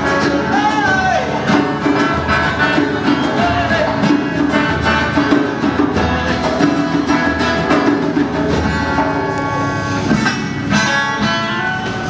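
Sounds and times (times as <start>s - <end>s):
acoustic guitar: 0.0s - 12.0s
djembe playing: 0.0s - 12.0s.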